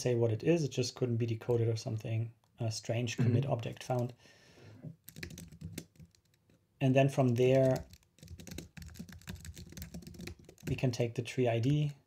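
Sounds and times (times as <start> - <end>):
computer keyboard typing: 5.0 - 6.4, 7.2 - 10.8.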